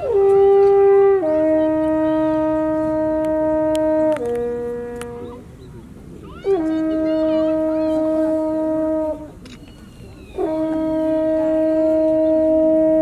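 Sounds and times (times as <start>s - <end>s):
brass horn long notes: 0.0s - 5.4s, 6.4s - 9.4s, 10.3s - 13.0s.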